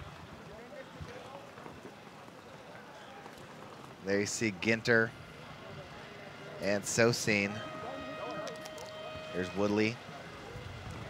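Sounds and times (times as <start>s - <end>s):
distant indistinct voices: 0.0s - 11.0s
outdoor background noise: 0.0s - 11.0s.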